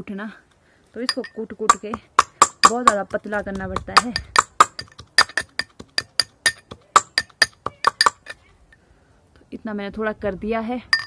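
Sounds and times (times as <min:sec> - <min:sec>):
metal pestle pounding in mortar: 0:01.1 - 0:08.4.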